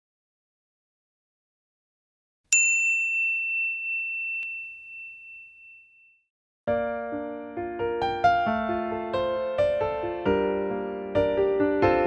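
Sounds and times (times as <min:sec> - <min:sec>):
high bell-like ding: 0:02.5 - 0:06.2.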